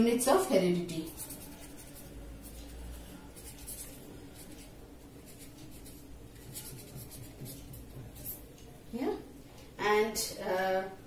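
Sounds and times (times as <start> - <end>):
pen writing on paper: 5.3 - 8.4.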